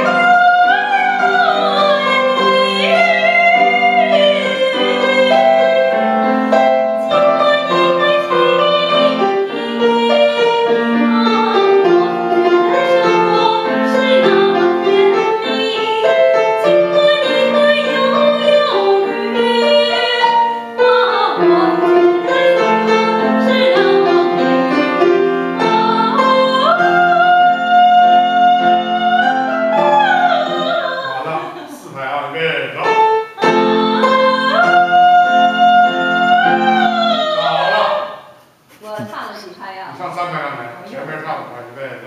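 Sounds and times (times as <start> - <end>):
woman singing classically: 0.0 - 31.8, 33.4 - 39.8
slow piano accompaniment: 0.0 - 38.4.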